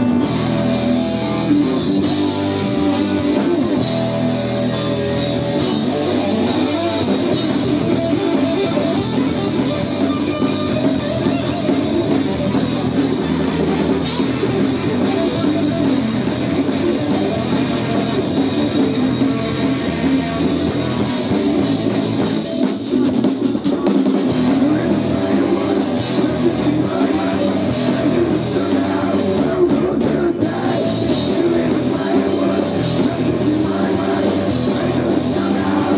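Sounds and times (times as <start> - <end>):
bass guitar: 0.0 - 35.9
drum kit: 0.0 - 35.9
electric guitars: 0.0 - 35.9.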